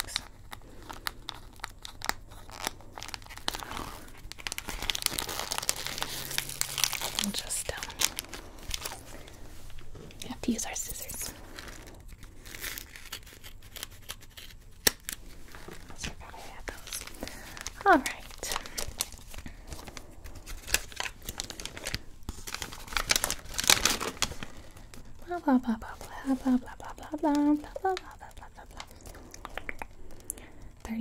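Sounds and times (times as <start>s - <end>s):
paper packaging crinkling: 0.0s - 30.2s.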